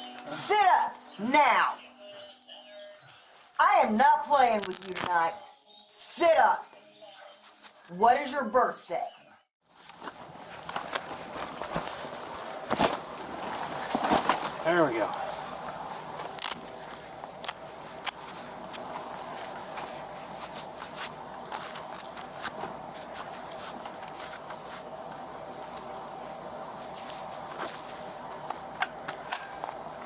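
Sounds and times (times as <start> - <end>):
rustling and scuffing: 9.6 - 30.0
faint steady hum: 9.8 - 30.0.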